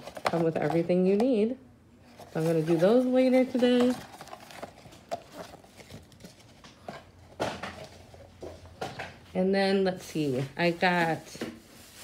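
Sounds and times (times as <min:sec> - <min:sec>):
card sleeves rustling: 0:02.0 - 0:07.0.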